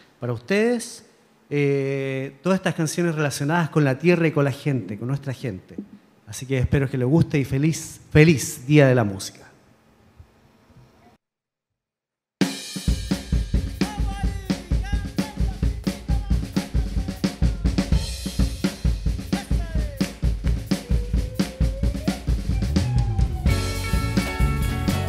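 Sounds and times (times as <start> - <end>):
drum beat: 12.4 - 25.0
bass guitar: 12.9 - 25.0
electric guitar: 20.1 - 25.0.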